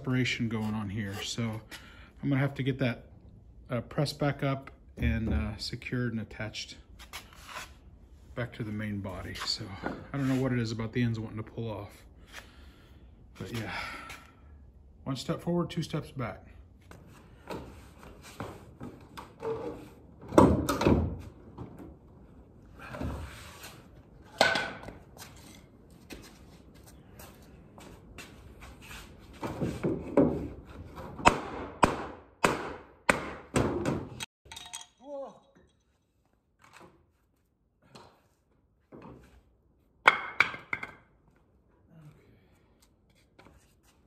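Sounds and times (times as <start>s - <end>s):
heavy wooden thuds and knocks: 31.2s - 34.2s.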